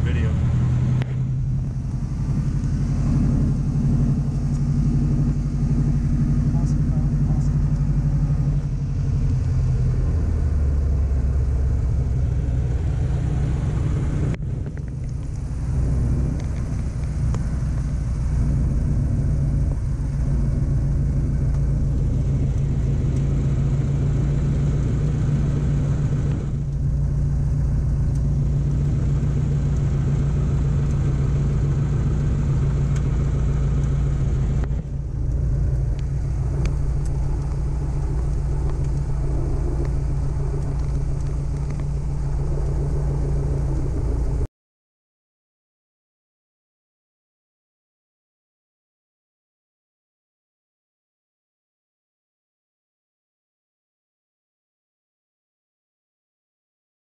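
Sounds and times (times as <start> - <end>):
propeller aircraft engine drone: 0.0 - 44.5.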